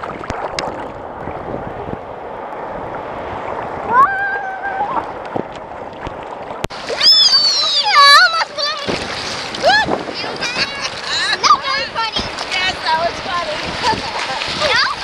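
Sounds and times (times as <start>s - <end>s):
water sloshing and splashing: 0.0s - 15.0s
child calling: 3.9s - 5.2s, 7.0s - 9.0s.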